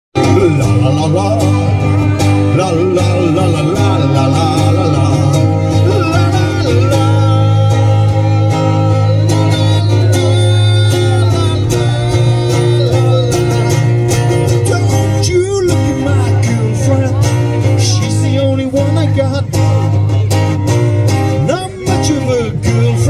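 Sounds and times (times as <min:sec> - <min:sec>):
person singing: 0:00.2 - 0:20.3, 0:21.3 - 0:23.0
amplified guitars: 0:00.2 - 0:23.0
heavy low bass: 0:00.2 - 0:23.0.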